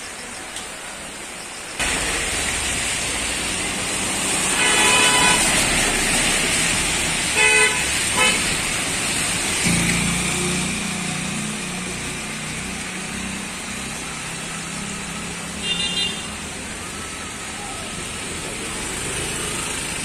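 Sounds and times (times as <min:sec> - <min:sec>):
vehicle horn toot: 0:04.6 - 0:05.6, 0:07.4 - 0:08.4, 0:15.6 - 0:16.4
vehicle engine passing close: 0:08.0 - 0:15.6.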